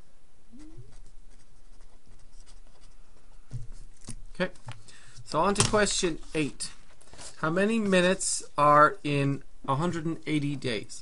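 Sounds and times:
marker pen writing on paper: 0.7 - 3.0.

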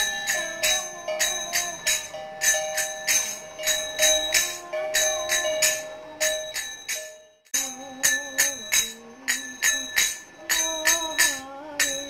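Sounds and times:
metal bell struck in steady beat: 0.0 - 12.0
slowly wandering melody: 0.0 - 12.0.

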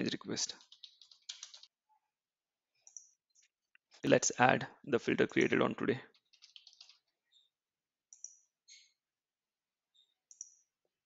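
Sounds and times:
mouse and keyboard clicks: 0.6 - 1.7, 2.8 - 3.5, 6.1 - 7.1, 8.1 - 8.9, 10.2 - 10.7.

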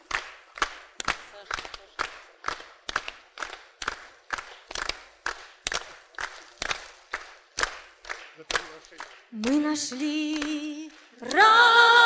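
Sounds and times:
group clapping in unison: 0.0 - 12.0.

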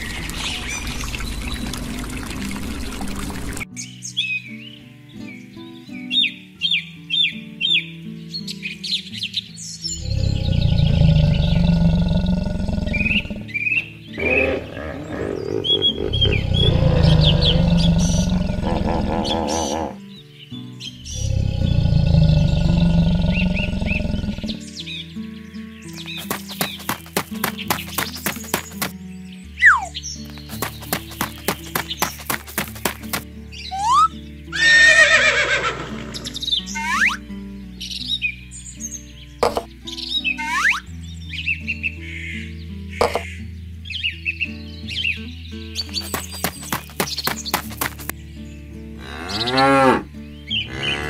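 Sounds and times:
deep animal calls: 10.0 - 13.5, 14.2 - 20.0, 21.1 - 24.6, 49.0 - 51.0
background music: 12.8 - 51.0
high bird chirps: 25.8 - 28.9, 29.5 - 37.2, 39.4 - 40.9, 45.8 - 48.1.

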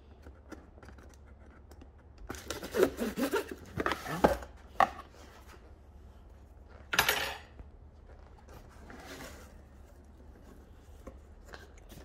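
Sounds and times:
cardboard rustling: 8.1 - 12.0.

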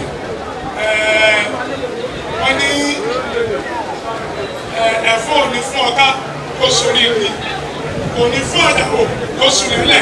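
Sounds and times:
man speaking into a microphone: 0.8 - 1.7, 2.3 - 3.5, 4.7 - 10.0.

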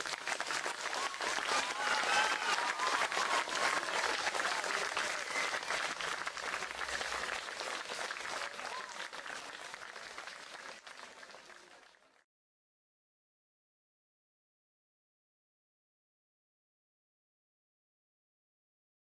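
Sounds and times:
crowd applauding: 0.0 - 12.3.

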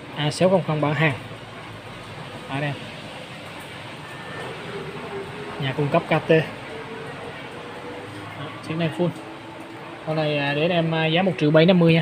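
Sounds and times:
steady background noise: 0.0 - 12.0
faint brief tone: 4.0 - 5.0.

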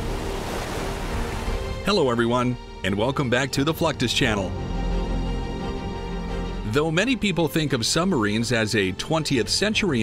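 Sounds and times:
ocean waves and surf: 0.0 - 2.5.

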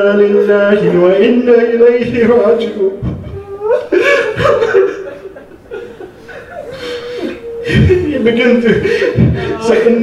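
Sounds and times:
man sobbing: 3.1 - 10.0.

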